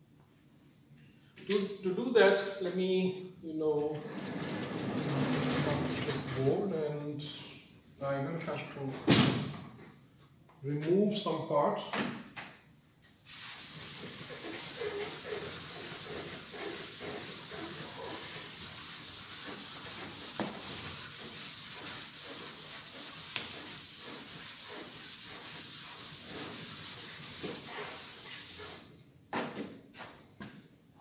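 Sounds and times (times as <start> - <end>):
chalkboard being erased: 13.2 - 28.9.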